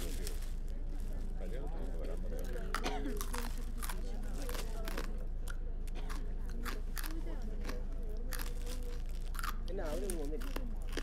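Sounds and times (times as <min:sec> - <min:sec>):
crunchy snack being chewed: 0:02.0 - 0:11.0.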